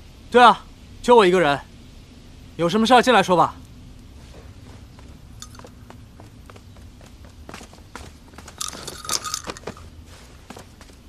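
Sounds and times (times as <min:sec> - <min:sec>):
low steady room hum: 0:00.0 - 0:11.0
soft footsteps: 0:04.2 - 0:11.0.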